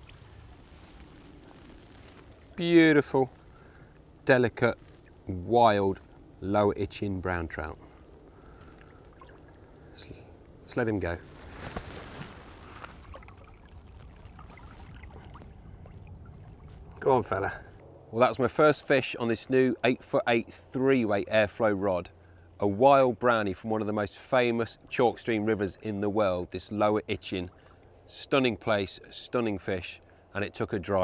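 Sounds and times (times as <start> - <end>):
water trickling and splashing: 0.0 - 6.9, 7.9 - 17.8, 26.6 - 28.3
outdoor ambience hiss and rumble: 0.0 - 31.0.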